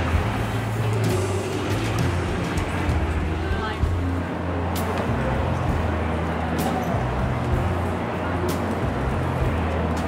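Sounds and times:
music playing: 0:00.0 - 0:10.0
street traffic rumble: 0:00.0 - 0:10.0.

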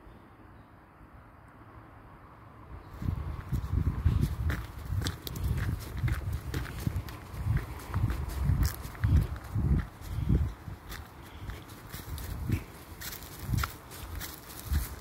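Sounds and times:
footsteps on leafy dirt path: 0:02.9 - 0:15.0.

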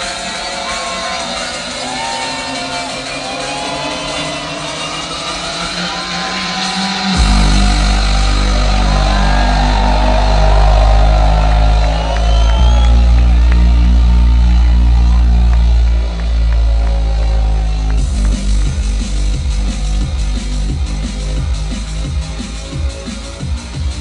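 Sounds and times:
crowd cheering: 0:00.0 - 0:23.9
drum and bass music over sound system: 0:00.0 - 0:24.0
heavy bass line: 0:07.1 - 0:24.0.

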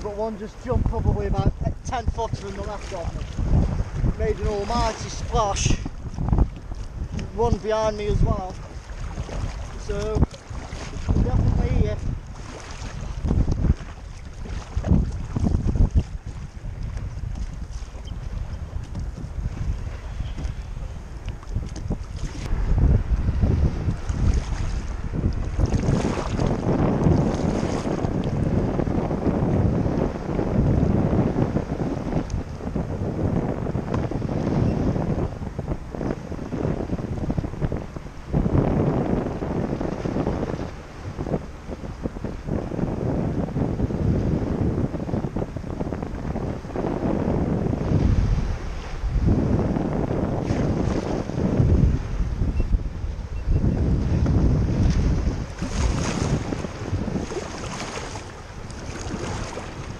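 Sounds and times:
water lapping around kayak: 0:00.0 - 0:59.9
wind rumbling on microphone: 0:00.0 - 0:59.9.

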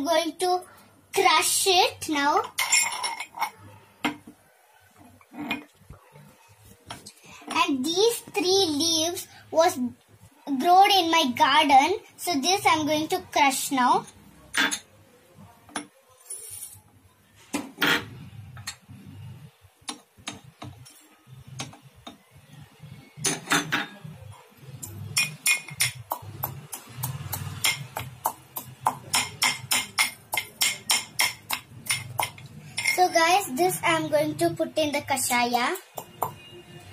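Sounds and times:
metal pestle pounding in mortar: 0:27.6 - 0:32.4.

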